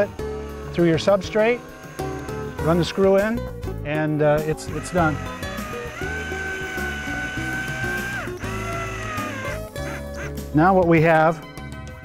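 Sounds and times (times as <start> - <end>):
cordless drill whining: 0.0 - 3.8, 4.4 - 10.1
background music: 0.0 - 12.0.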